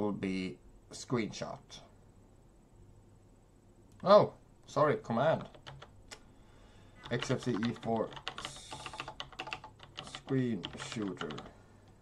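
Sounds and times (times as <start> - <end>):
computer keyboard typing: 5.4 - 5.9, 7.0 - 11.5.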